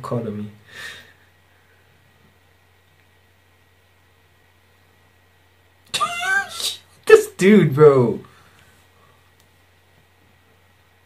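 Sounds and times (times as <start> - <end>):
high-pitched human squeal: 5.9 - 6.9.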